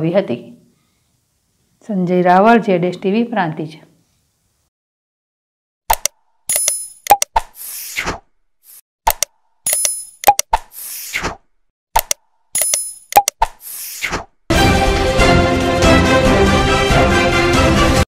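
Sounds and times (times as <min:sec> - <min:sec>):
mouse-click and pop sounds: 0:05.9 - 0:08.2, 0:09.1 - 0:11.4, 0:12.0 - 0:14.3.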